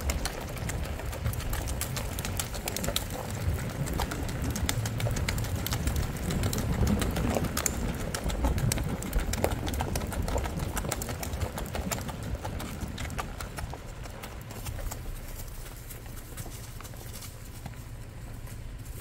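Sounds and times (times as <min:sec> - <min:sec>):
horse hoofbeats on dirt road: 0:00.0 - 0:19.0.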